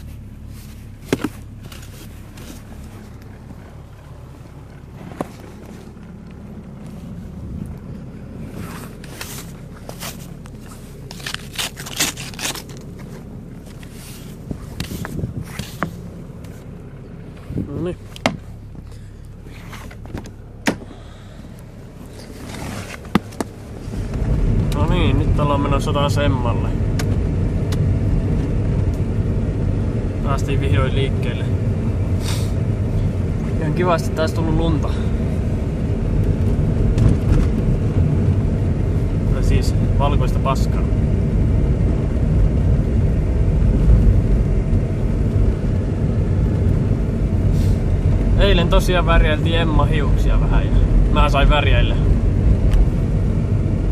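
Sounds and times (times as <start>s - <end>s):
car engine idling: 0.0s - 53.9s
car door clicks and knocks: 18.2s - 18.5s, 20.0s - 20.9s.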